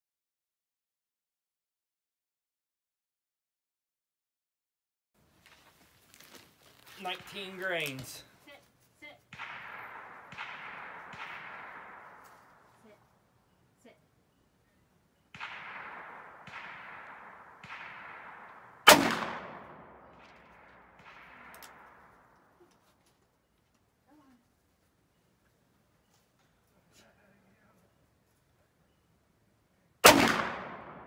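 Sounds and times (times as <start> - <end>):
loud revolver shot echoing: 9.3 - 12.8, 15.3 - 22.4, 30.0 - 31.0
fainter gunshots: 9.3 - 13.2, 15.3 - 22.6, 30.0 - 31.0.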